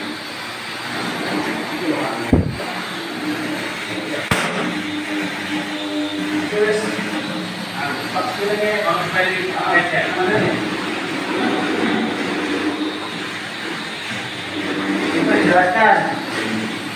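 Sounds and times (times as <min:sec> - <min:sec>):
steady hum: 0:00.0 - 0:16.9
sharp click: 0:04.3 - 0:04.6.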